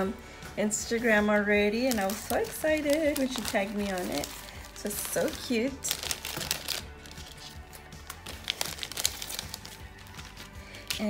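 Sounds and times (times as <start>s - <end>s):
soft background music: 0.0s - 11.0s
cellophane bag crinkling: 1.7s - 11.0s.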